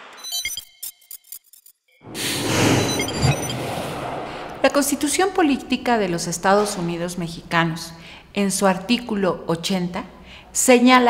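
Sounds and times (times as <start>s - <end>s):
whooshing sound effect: 2.0s - 5.0s.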